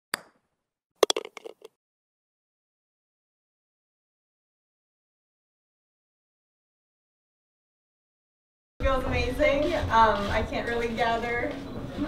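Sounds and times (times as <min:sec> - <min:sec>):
quick run of clicks and taps: 0:01.0 - 0:01.7.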